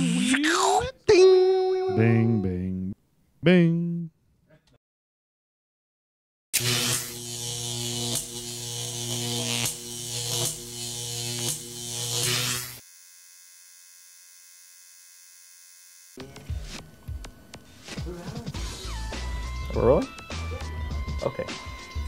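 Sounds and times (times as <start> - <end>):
neon sign electrical buzz: 6.6 - 16.2.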